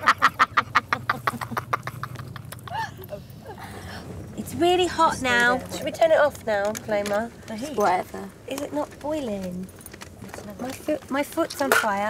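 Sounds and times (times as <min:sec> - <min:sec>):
woman laughing hard: 0:00.0 - 0:03.8
low steady hum: 0:00.0 - 0:12.0.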